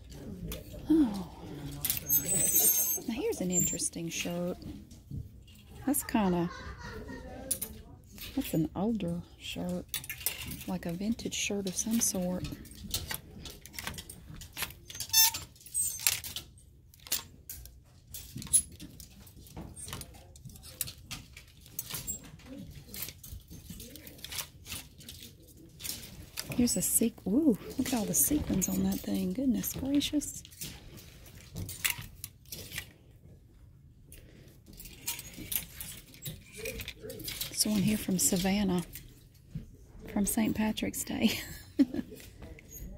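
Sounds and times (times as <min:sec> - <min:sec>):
hangers scraping along metal rack: 0:01.6 - 0:04.8, 0:22.8 - 0:32.9, 0:34.7 - 0:39.0
plastic hangers scraping on metal rail: 0:01.8 - 0:04.4
high squeak: 0:02.0 - 0:03.7.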